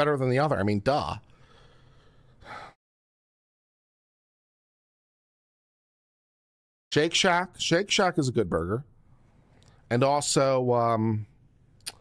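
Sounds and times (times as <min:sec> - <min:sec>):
man speaking: 0:00.0 - 0:01.2, 0:06.9 - 0:08.9, 0:09.9 - 0:11.3
sharp breath through nose: 0:01.3 - 0:02.8.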